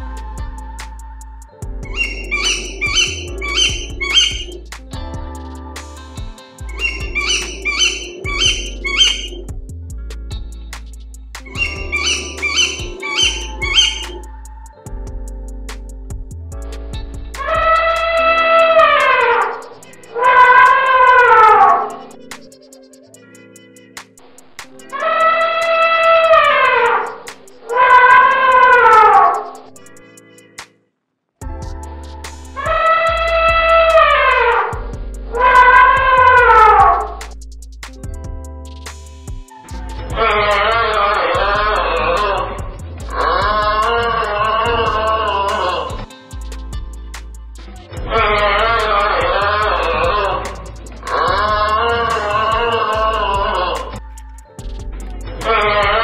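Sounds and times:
background music: 0.0s - 30.8s, 31.4s - 56.0s
owl calling: 1.8s - 4.6s, 6.7s - 9.5s, 11.5s - 14.3s, 17.4s - 22.0s, 32.2s - 37.2s, 39.5s - 46.1s, 48.1s - 54.4s
elephant trumpeting: 1.9s - 4.5s, 6.7s - 9.4s, 11.5s - 14.2s, 17.4s - 22.0s, 25.0s - 29.6s, 32.5s - 37.2s, 39.6s - 46.0s, 48.0s - 54.0s, 55.4s - 56.0s.

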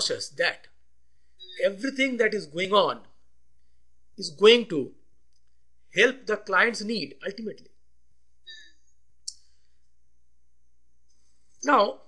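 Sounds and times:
faint brief tone: 1.4s - 1.7s, 8.5s - 8.8s.

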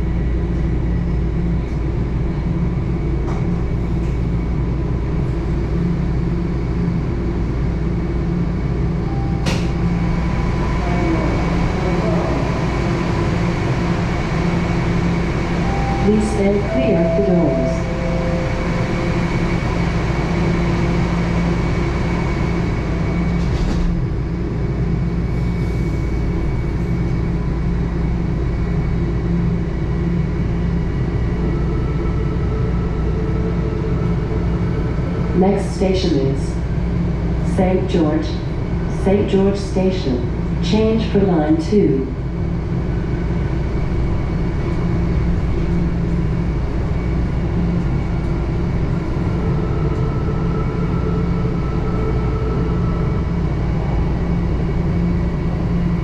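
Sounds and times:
subway car equipment hum: 0.0s - 56.0s
train pulling away: 9.0s - 23.9s
voices: 15.9s - 18.3s.

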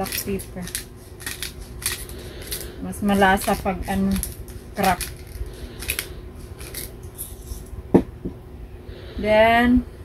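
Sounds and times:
pepper grinder cracking peppercorns: 0.0s - 7.7s.

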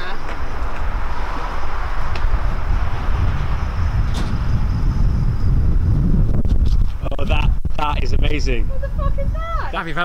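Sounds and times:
heavy low rumble: 0.0s - 9.6s.

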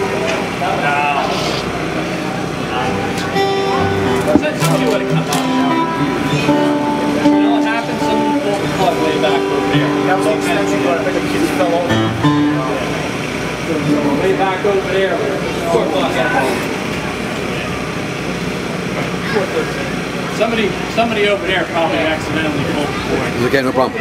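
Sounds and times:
people talking: 0.0s - 24.0s
electric guitar long notes: 2.0s - 17.2s.

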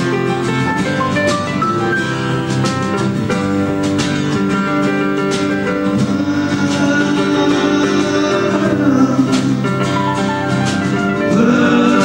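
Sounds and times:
drum kit with cymbal strokes: 0.0s - 12.0s
frame drum: 0.0s - 12.0s
strummed acoustic guitar: 0.0s - 12.0s.

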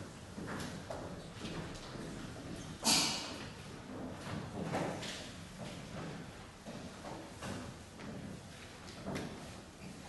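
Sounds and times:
footsteps on wooden stage: 0.0s - 10.0s.

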